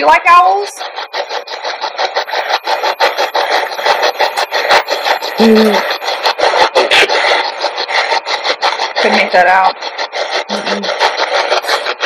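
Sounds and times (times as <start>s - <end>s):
choppy radio static bursts: 0.0s - 12.0s.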